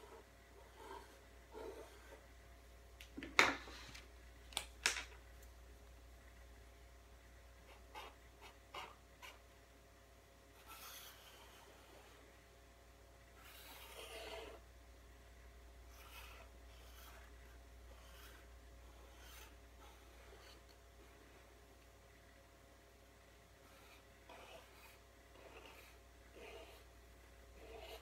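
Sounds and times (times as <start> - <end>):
marker scratching on paper: 0.0 - 2.2, 7.6 - 9.4, 10.6 - 12.2, 13.4 - 14.6, 15.9 - 20.6, 23.6 - 26.9, 27.6 - 28.0.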